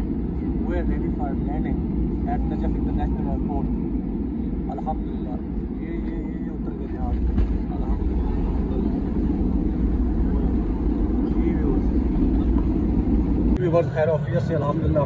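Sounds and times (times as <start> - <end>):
airliner cabin rumble on landing: 0.0 - 15.0.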